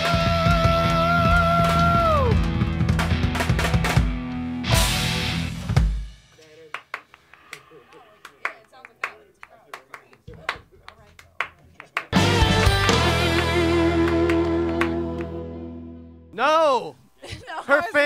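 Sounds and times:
person singing: 0:00.0 - 0:02.4
rock band playing: 0:00.0 - 0:06.4, 0:12.1 - 0:16.3
hand claps: 0:06.3 - 0:15.4.

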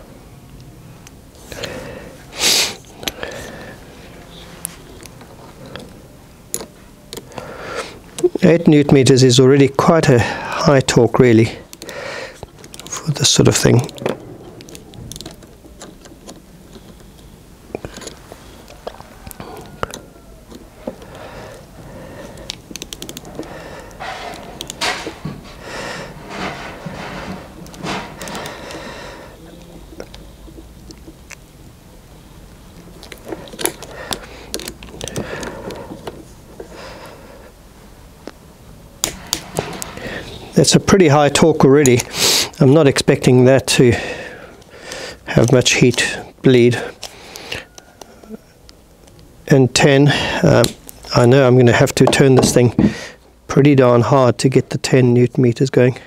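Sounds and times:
metal scraping: 0:24.0 - 0:28.7.

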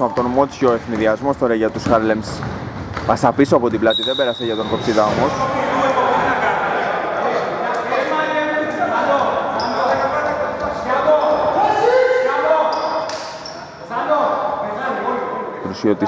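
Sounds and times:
basketball bouncing on court: 0:00.0 - 0:04.0
shoe squeaks: 0:03.8 - 0:05.2, 0:09.5 - 0:11.7, 0:12.5 - 0:13.8
players calling out: 0:04.2 - 0:14.7.

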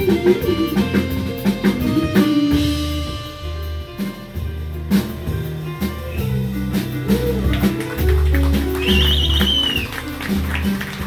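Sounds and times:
jazz band playing: 0:00.0 - 0:11.0
piano sustained low notes: 0:00.0 - 0:11.0.

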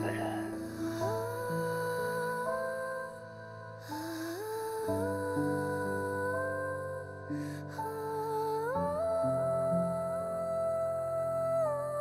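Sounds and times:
slow soft background music: 0:00.0 - 0:12.0.

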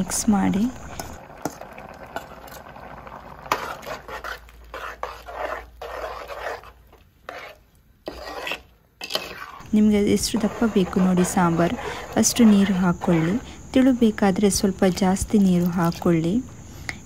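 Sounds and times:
metal spoon stirring thick paste: 0:03.4 - 0:16.4.

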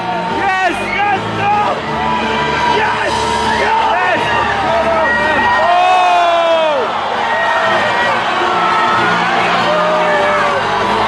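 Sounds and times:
arena crowd yelling and cheering: 0:00.0 - 0:11.0.

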